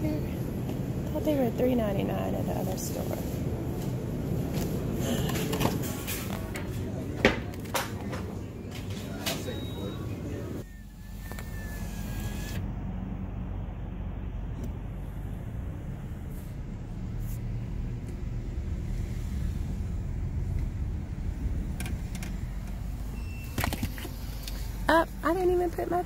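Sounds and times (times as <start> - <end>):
car engine and road rumble: 0.0 - 26.0.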